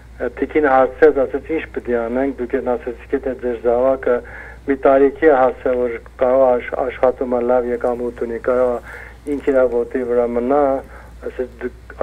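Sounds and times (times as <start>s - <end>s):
person talking: 0.2s - 12.0s.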